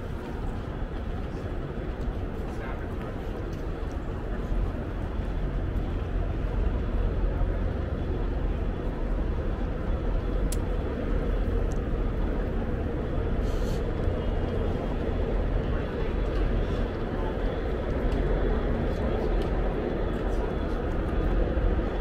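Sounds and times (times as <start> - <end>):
indistinct voices of passers-by: 0.0 - 22.0
traffic rumble: 0.0 - 22.0.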